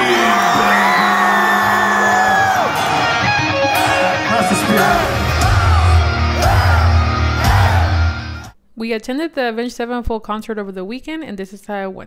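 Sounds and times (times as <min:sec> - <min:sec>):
vocalist yelling: 0:00.0 - 0:08.2
heavy metal band playing loud: 0:00.0 - 0:08.5.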